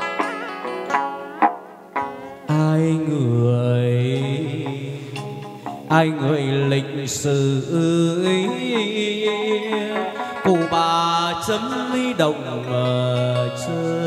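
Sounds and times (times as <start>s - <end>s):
instrumental accompaniment: 0.0s - 14.0s
person singing long sliding notes: 2.4s - 14.0s.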